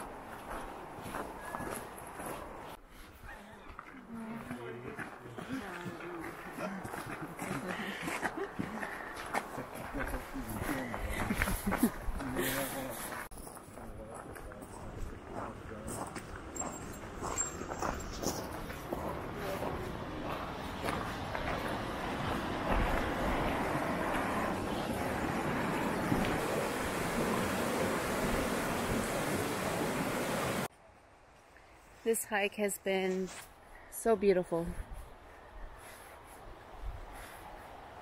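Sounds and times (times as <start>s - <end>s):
footsteps on gravel: 3.7s - 25.3s
stream rushing: 18.4s - 30.7s.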